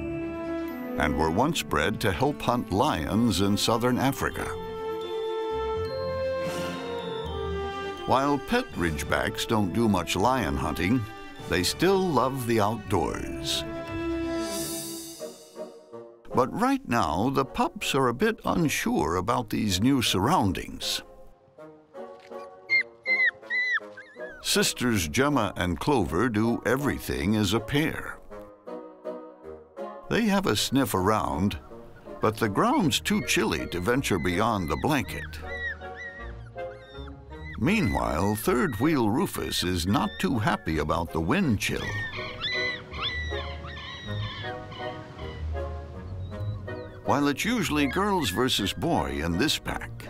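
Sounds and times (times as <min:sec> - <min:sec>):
background music: 0:00.0 - 0:50.0
puppies whimpering: 0:22.3 - 0:24.5, 0:31.2 - 0:49.5.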